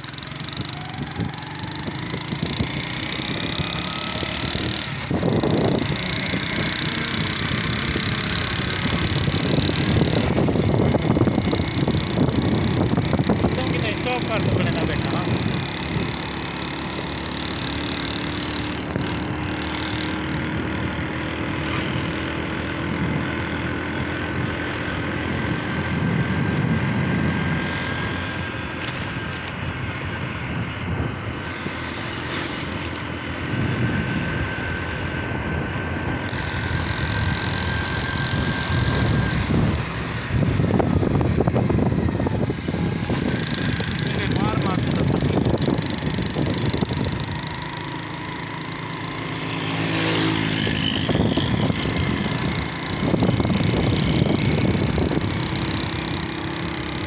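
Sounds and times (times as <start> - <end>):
road noise: 0.0 - 57.0
vehicle engine running: 0.0 - 57.0.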